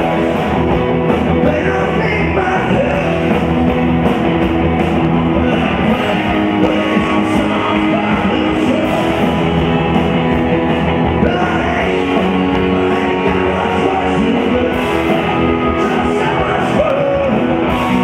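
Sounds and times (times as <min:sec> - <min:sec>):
drums: 0:00.0 - 0:18.0
electric guitars: 0:00.0 - 0:18.0.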